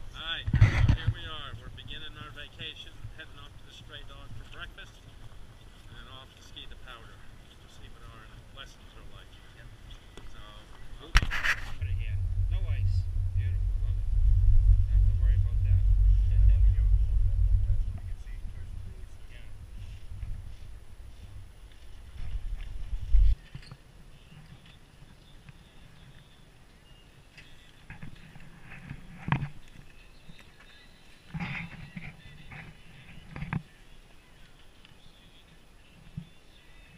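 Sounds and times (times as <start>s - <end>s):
wind buffeting microphone: 0.0s - 23.4s
footsteps: 9.8s - 23.7s.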